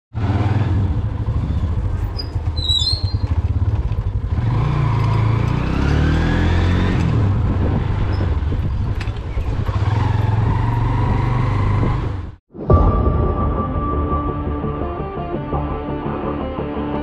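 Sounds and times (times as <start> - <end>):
motorcycle engine running: 0.2 - 12.4.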